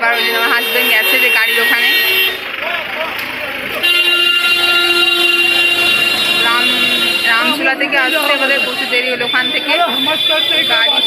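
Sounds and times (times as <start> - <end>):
street traffic noise: 0.0 - 11.0
vehicle horn held: 3.8 - 8.9.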